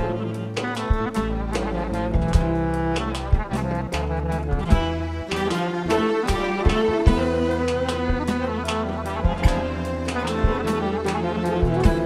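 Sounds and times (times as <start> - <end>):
drum hits: 0.0 - 3.7, 4.5 - 12.0
bass: 0.0 - 12.0
clarinet melody: 0.0 - 12.0
plucked lute: 0.0 - 12.0.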